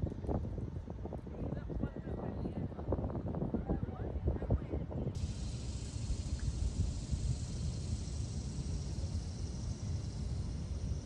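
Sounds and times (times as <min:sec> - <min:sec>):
wind rumbling on microphone: 0:00.0 - 0:11.0
faint steady hiss: 0:05.2 - 0:11.0.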